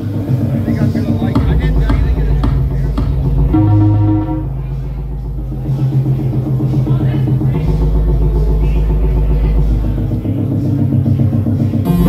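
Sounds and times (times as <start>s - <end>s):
deep sustained bass line: 0.0s - 12.0s
synthesizers: 0.0s - 12.0s
drum beat: 0.2s - 12.0s.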